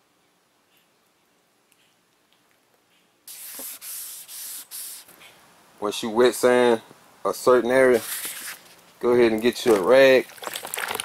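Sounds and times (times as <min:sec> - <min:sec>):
wet sandpaper rubbing: 0:03.3 - 0:05.1, 0:07.9 - 0:08.8.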